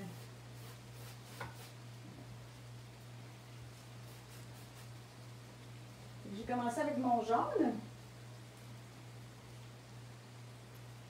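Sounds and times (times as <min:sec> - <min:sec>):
paintbrush scratching canvas: 0:00.0 - 0:01.8, 0:03.7 - 0:05.1
low steady hum: 0:00.0 - 0:11.0.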